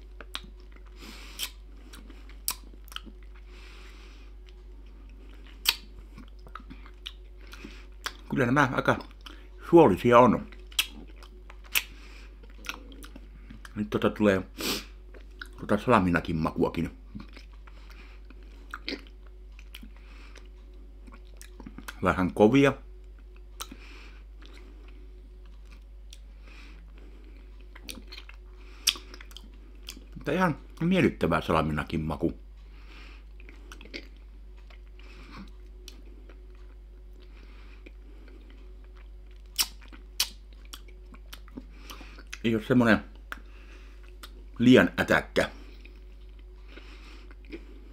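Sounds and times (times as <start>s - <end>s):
steady low hum: 0.0s - 47.9s
wet mouth chewing clicks: 0.2s - 3.4s, 5.5s - 8.3s, 10.5s - 13.8s, 17.2s - 22.0s, 27.7s - 30.2s, 38.8s - 42.4s, 43.1s - 44.4s
mouth clicks: 39.6s - 42.4s.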